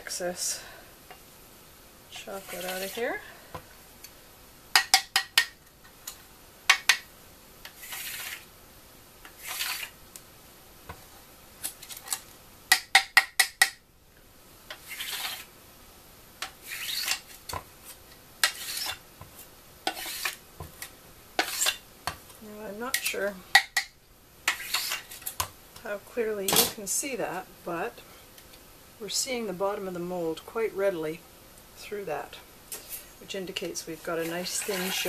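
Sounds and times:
scraper scraping chocolate mould: 2.2 - 3.1, 7.7 - 8.5, 9.3 - 10.0, 14.7 - 15.5, 16.4 - 17.4, 18.4 - 19.0, 19.8 - 21.8, 24.5 - 25.2, 34.0 - 35.0.

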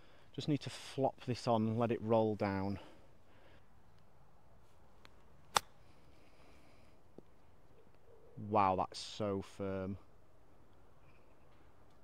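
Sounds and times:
golf club striking ball: 5.5 - 5.8.

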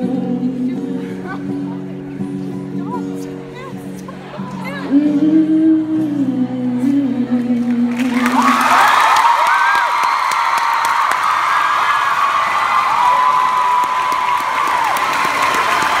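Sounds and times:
crowd applauding and cheering: 7.7 - 16.0
high drawn-out screams: 8.4 - 16.0.

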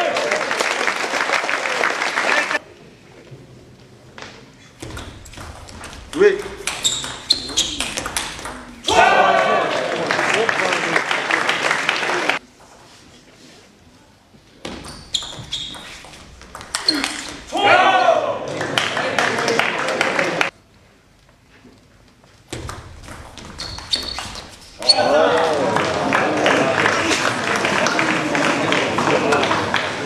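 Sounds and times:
people shouting: 8.8 - 10.0, 16.9 - 18.5, 24.8 - 26.7.

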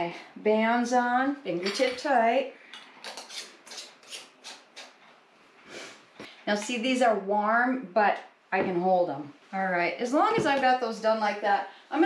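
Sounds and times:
metal band rasping on glass jar: 3.0 - 4.6.

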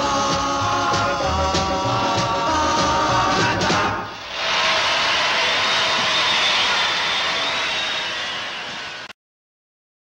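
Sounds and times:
audience applauding: 4.4 - 9.1.

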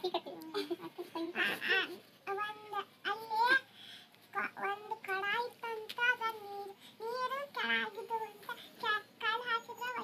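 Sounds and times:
girl singing: 1.6 - 10.0.

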